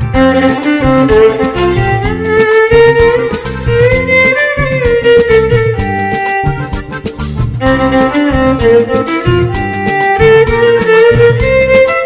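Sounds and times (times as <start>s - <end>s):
drum beat and bass backing: 0.0s - 12.0s
solo violin melody: 0.0s - 12.0s.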